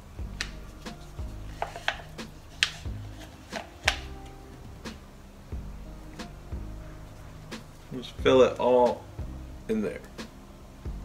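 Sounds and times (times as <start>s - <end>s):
stick clicking and tapping in cup: 1.5s - 2.8s, 3.5s - 4.1s.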